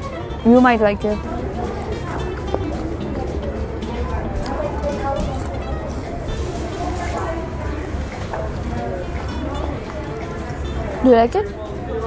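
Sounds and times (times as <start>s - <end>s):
indistinct voices chatter: 0.0s - 12.0s.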